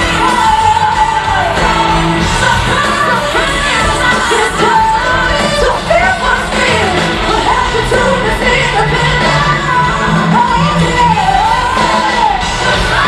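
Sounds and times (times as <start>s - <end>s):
live pop-rock band: 0.0s - 13.0s
woman singing: 0.0s - 13.0s.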